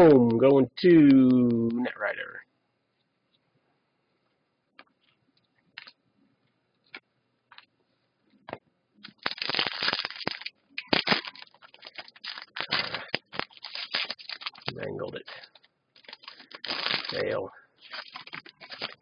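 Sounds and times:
foil wrapper tearing and crinkling: 9.0s - 19.0s.

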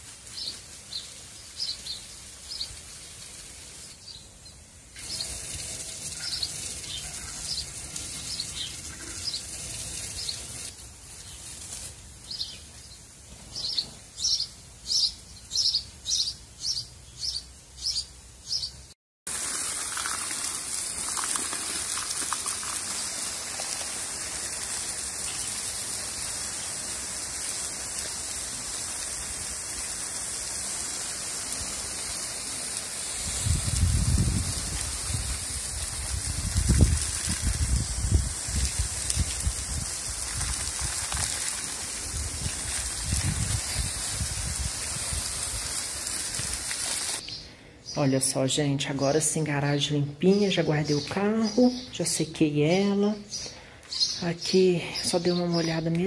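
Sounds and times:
garden hose water hissing: 0.0s - 18.6s, 19.3s - 47.4s, 50.2s - 56.0s
small bird chirping: 6.1s - 9.5s, 12.2s - 18.8s, 53.3s - 56.0s.

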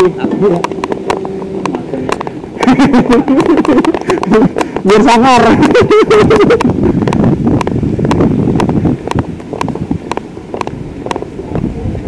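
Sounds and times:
motorbike running slowly: 0.0s - 12.0s
wind buffeting microphone: 0.0s - 12.0s.

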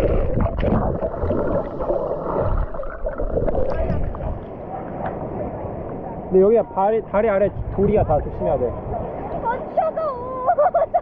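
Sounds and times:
water sloshing and gurgling: 0.0s - 11.0s.

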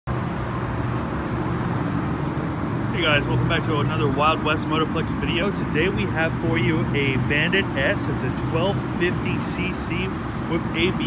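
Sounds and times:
traffic noise: 0.1s - 11.0s
vehicle engine humming: 0.1s - 11.0s.

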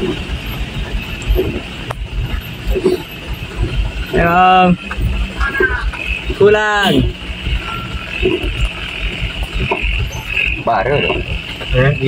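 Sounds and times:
truck engine and road rumble: 0.0s - 12.0s.

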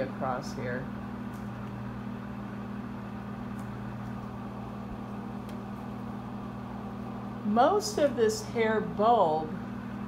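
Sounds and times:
projector cooling fan humming: 0.0s - 10.0s.

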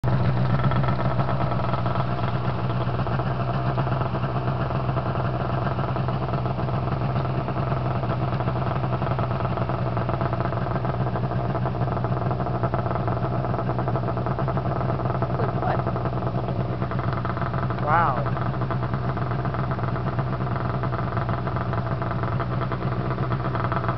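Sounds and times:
snowmobile engine running: 0.0s - 23.9s.

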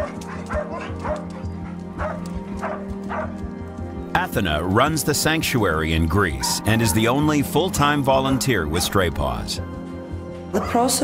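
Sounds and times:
dog barking and yipping: 0.0s - 3.4s, 6.3s - 7.4s, 8.3s - 9.1s
background music: 0.0s - 11.0s.

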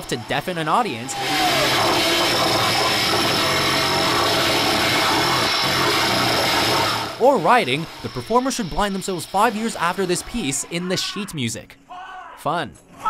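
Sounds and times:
harsh grinding noise: 0.0s - 11.4s
low hum: 1.0s - 10.7s.

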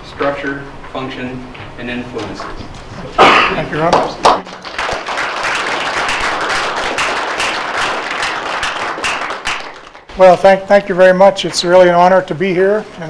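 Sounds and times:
audience applauding: 3.8s - 10.2s.

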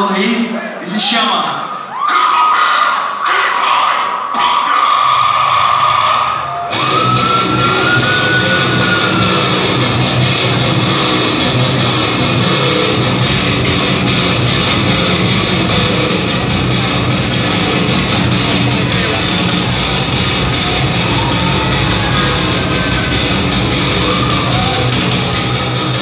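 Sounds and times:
heavy metal band playing live: 4.9s - 26.0s
distorted electric guitar: 5.1s - 26.0s
fast drum strokes: 13.3s - 26.0s.

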